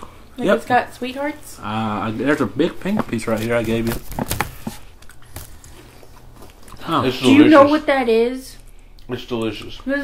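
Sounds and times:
popcorn crunching: 0:02.8 - 0:07.2, 0:08.5 - 0:10.0.

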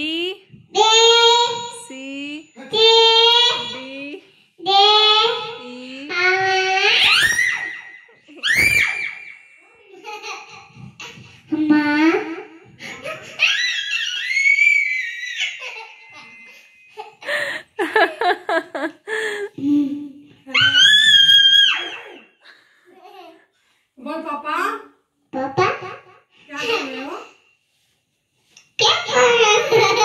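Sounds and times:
toddler squealing into microphone: 0:06.8 - 0:09.4, 0:13.4 - 0:15.6, 0:20.5 - 0:22.3
toddler screaming: 0:13.4 - 0:15.6.

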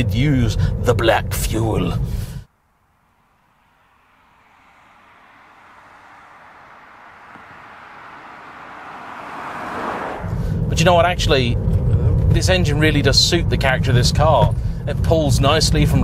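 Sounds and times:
car passing by: 0:02.9 - 0:10.8.

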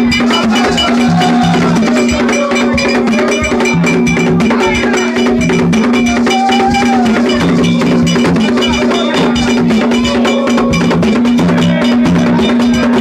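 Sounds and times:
hand drums struck with sticks: 0:00.0 - 0:13.0
person singing or calling: 0:00.0 - 0:13.0
ringing metallic beat: 0:00.0 - 0:13.0.

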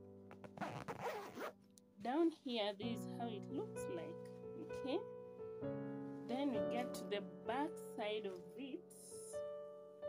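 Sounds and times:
background music: 0:00.0 - 0:10.0
zip on fabric bag: 0:00.4 - 0:01.6.

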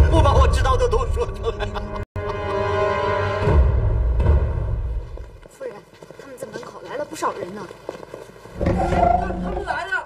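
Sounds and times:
dramatic music: 0:00.0 - 0:05.0
footsteps: 0:04.7 - 0:09.8.

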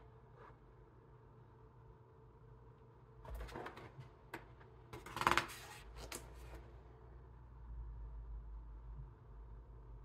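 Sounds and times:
book pages turning: 0:05.0 - 0:06.6.

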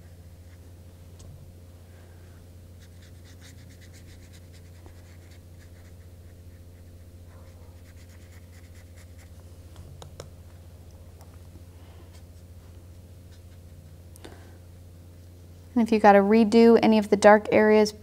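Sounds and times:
steady low hum: 0:00.0 - 0:18.0
brush scratching on paper: 0:02.8 - 0:09.4, 0:13.2 - 0:14.0.

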